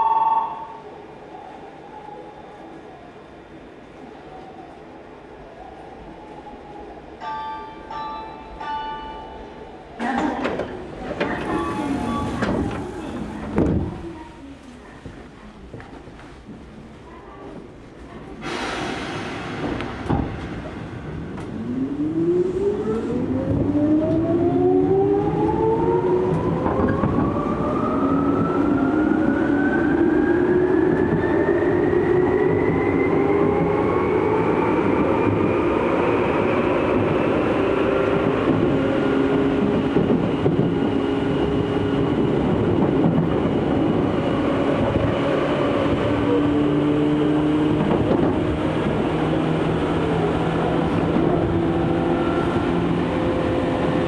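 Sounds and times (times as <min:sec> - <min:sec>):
wheel and track rumble: 0:10.0 - 0:16.9, 0:36.4 - 0:54.0.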